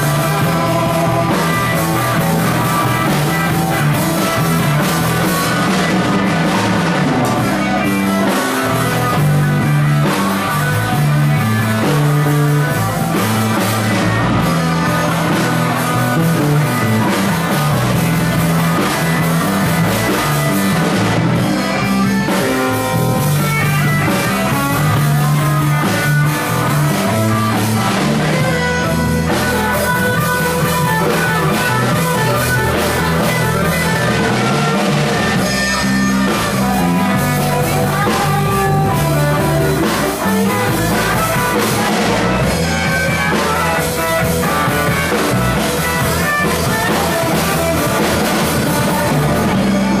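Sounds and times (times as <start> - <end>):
bass guitar: 0.0 - 50.0
drum kit: 0.0 - 50.0
electric guitar: 0.0 - 50.0.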